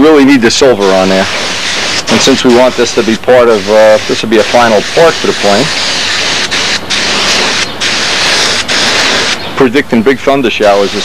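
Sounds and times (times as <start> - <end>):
spray gun hissing: 0.6 - 9.5, 10.6 - 11.0.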